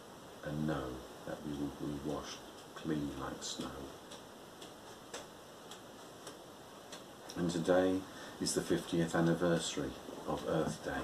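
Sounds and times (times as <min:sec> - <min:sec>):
clock ticking: 0:02.5 - 0:07.6.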